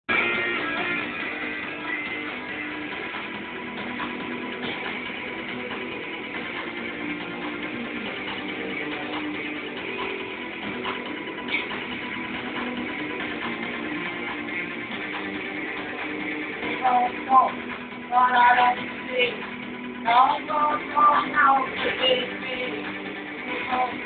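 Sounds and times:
live band with electric guitars: 0:00.1 - 0:24.0.

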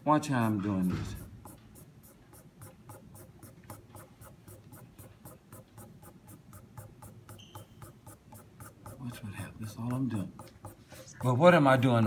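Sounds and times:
pastel rubbing on paper: 0:00.2 - 0:12.0.

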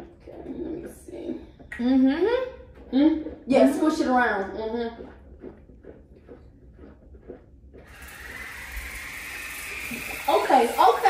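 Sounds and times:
electric water flosser humming: 0:03.4 - 0:11.0.

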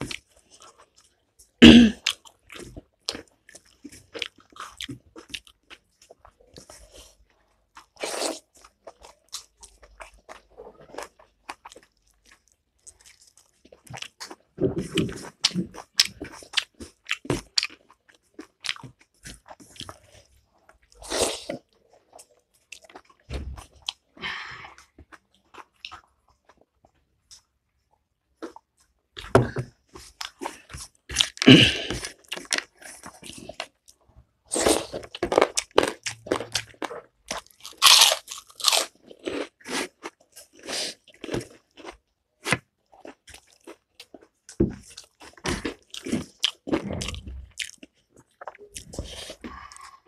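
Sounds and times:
person chewing food: 0:00.0 - 0:50.0.

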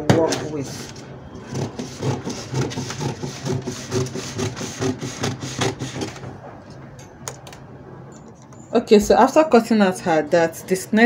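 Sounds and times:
scissors cutting paper: 0:00.8 - 0:06.2.

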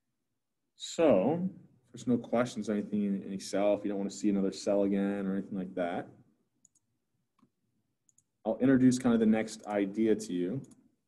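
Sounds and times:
computer mouse clicks: 0:06.6 - 0:07.5.

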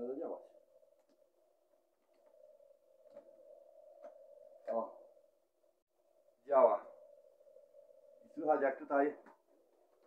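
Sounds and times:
faint electrical whine: 0:00.0 - 0:10.0.

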